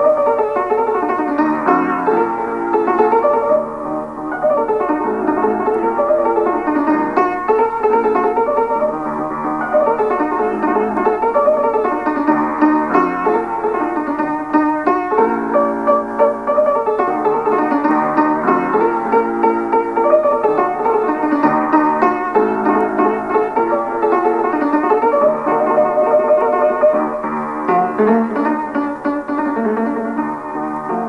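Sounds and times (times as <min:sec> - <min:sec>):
instrumental piano music: 0:00.0 - 0:31.0.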